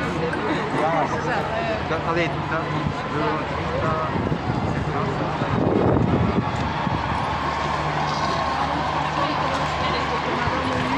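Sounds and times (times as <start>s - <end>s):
hubbub of large crowd: 0.0s - 10.9s.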